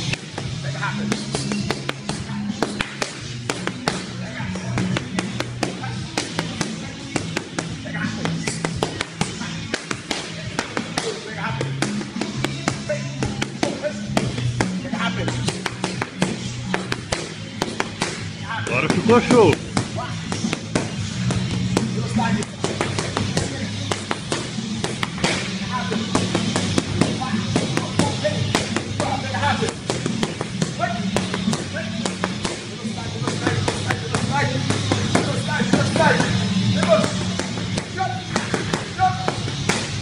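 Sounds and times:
background music with bass line: 0.0 - 40.0
boxing gloves hitting mitts: 0.0 - 40.0.

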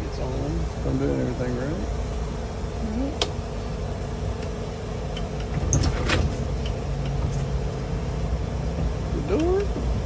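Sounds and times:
bus engine idling: 0.0 - 10.0
bus doors opening: 5.2 - 7.6.

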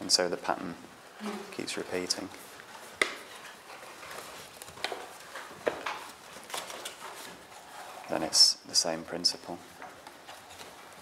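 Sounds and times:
paper crinkling as folded: 2.4 - 8.3, 10.1 - 11.0.

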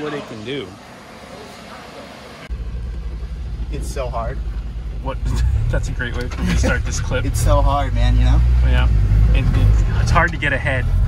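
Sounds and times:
car engine low rumble: 0.3 - 11.0.

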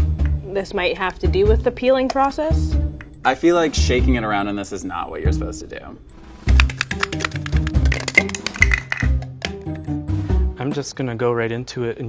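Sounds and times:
background music with bass: 5.3 - 10.6
egg rattling in plastic jar: 6.5 - 9.9.

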